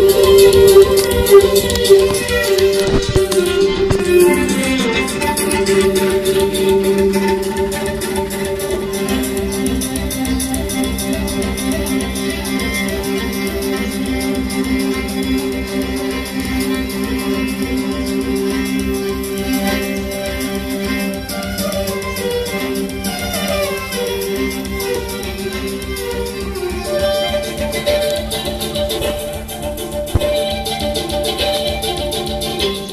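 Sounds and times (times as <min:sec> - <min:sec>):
bowed fiddle melody: 0:00.0 - 0:32.9.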